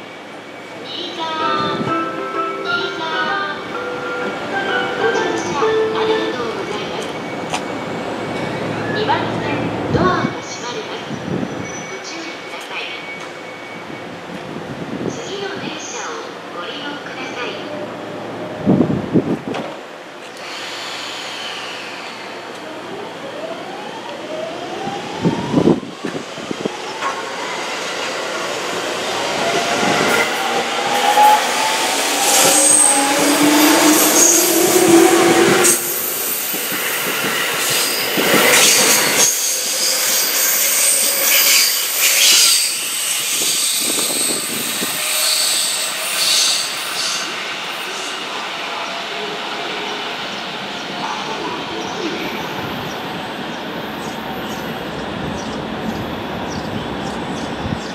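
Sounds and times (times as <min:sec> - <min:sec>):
electric train motor whine: 0:20.3 - 0:26.2
high squealing: 0:29.2 - 0:47.3.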